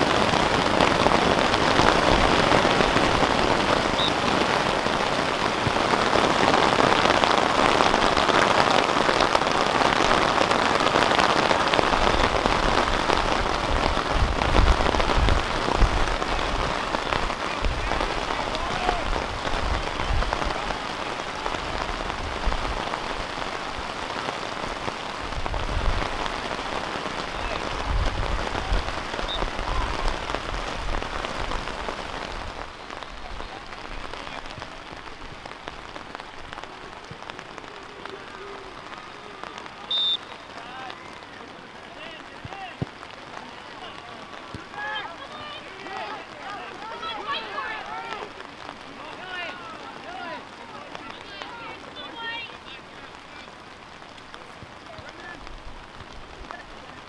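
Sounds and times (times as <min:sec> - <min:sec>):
heavy rain falling: 0:00.0 - 0:57.0.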